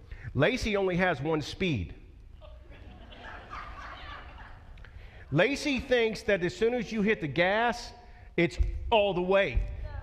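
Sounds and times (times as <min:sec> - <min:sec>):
faint laughter of several people: 0:02.4 - 0:04.8.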